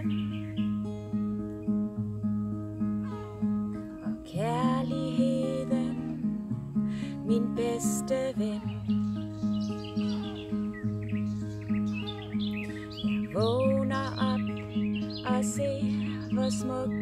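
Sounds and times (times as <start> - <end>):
acoustic guitar chords: 0.0 - 17.0
birds chirping: 0.0 - 17.0.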